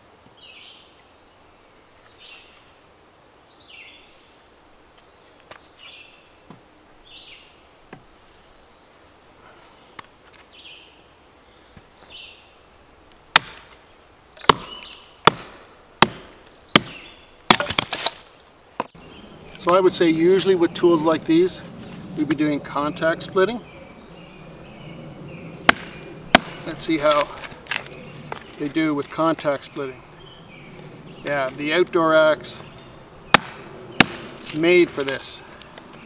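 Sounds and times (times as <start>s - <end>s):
songbird chirping: 0.3s - 36.0s
knife chopping into wood: 13.4s - 13.7s, 14.4s - 18.2s, 25.7s - 27.8s, 33.3s - 34.6s.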